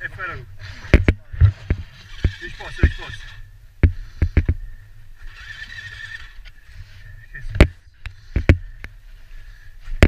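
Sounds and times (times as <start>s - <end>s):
dirt bike engine idling: 0.0s - 10.0s.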